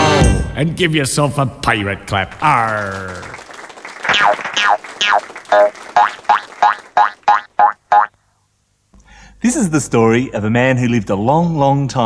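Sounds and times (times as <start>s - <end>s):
cartoon boing effects: 4.1s - 8.1s.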